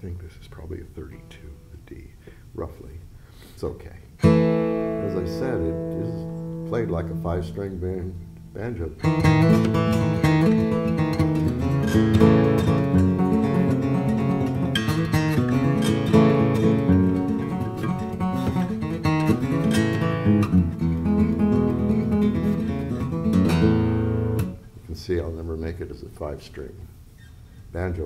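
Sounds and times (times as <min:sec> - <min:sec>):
fingerpicked guitar notes: 0:04.2 - 0:24.7.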